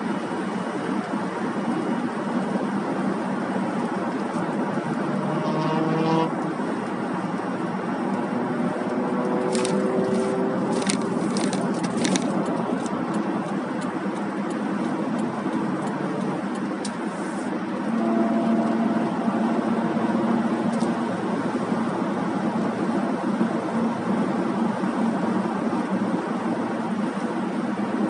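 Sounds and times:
car road noise inside cabin: 0.0 - 28.0.

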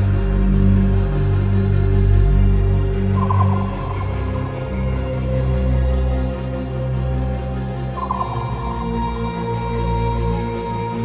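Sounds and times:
ambient electronic drones: 0.0 - 11.0.

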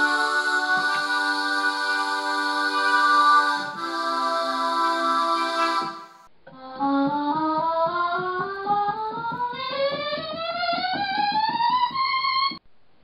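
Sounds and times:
tape keyboard chords: 0.0 - 12.6.

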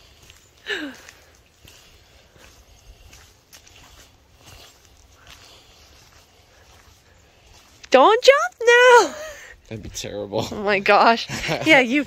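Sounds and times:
faint footsteps: 0.0 - 11.1.

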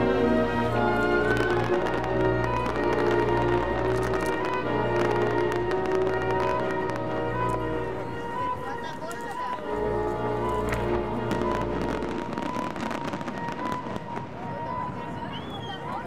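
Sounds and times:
classical orchestral music: 0.0 - 15.3
fireworks banging and crackling: 0.0 - 16.0.

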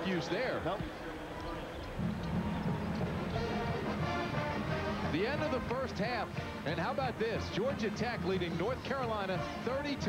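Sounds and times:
arena crowd noise: 0.0 - 10.0
music with held notes: 2.0 - 10.0.

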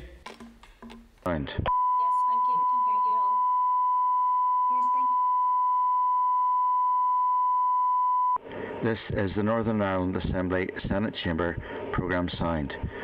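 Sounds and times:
steady high test tone: 1.7 - 8.4.

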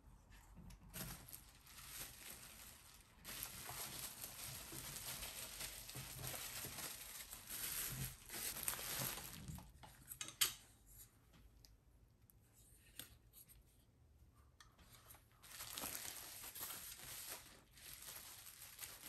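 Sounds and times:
bubble wrap rustling and crinkling: 0.8 - 10.0, 14.8 - 19.0.

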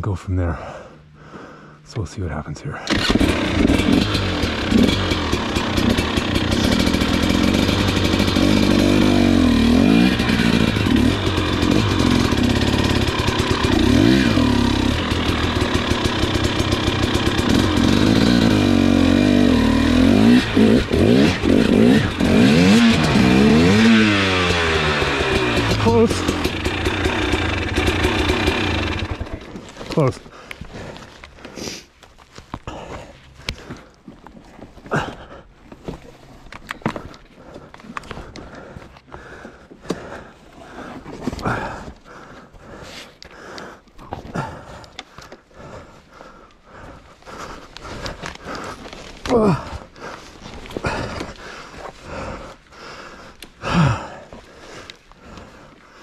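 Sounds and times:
motorcycle engine revving: 2.9 - 30.0, 45.6 - 54.2
motorcycle clattering on rocks: 32.0 - 39.2, 47.8 - 51.8.

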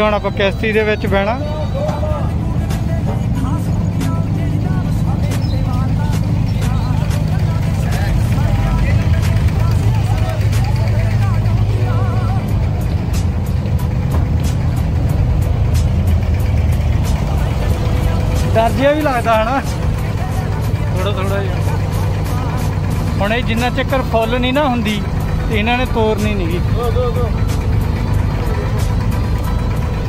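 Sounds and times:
passengers' voices: 0.0 - 14.7
boat diesel engine droning: 0.0 - 30.0.

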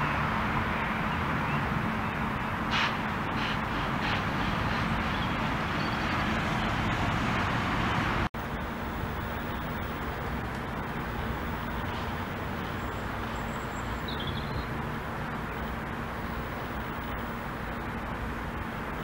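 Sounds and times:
distant road traffic: 0.0 - 19.0
faint high chirp: 12.8 - 14.7.

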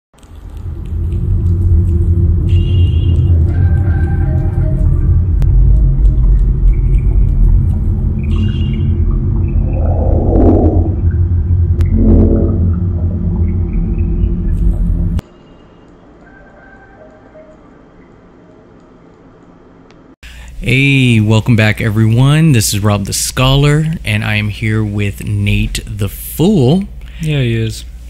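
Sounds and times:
deep rumbling drone: 0.2 - 15.2
sparse high tones: 9.4 - 15.2
short burst of noise: 11.8 - 13.4
brief pitched sound: 11.8 - 13.7.

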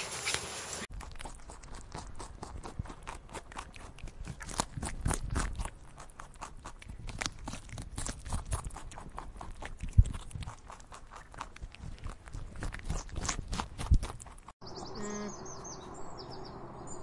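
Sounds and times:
rabbits crunching feed pellets: 0.0 - 14.6.

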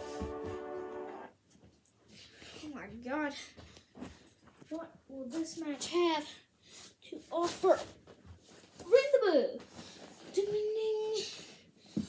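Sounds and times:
child speaking: 2.6 - 3.6, 4.7 - 8.0, 8.8 - 9.7, 10.3 - 11.5.

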